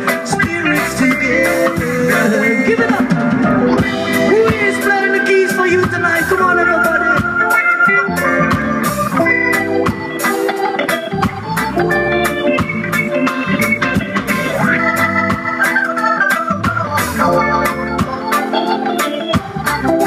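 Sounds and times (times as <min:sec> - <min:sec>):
organ keyboard chords: 0:00.0 - 0:20.0
reggae band playing: 0:00.0 - 0:20.0.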